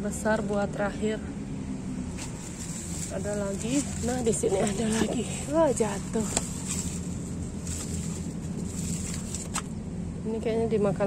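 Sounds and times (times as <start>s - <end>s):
low outdoor hum: 0.0s - 11.0s.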